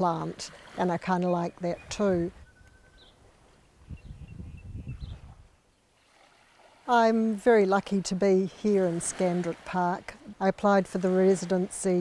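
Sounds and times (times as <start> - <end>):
bird chirps: 1.2 - 3.2
wind rumble on microphone: 1.6 - 5.6.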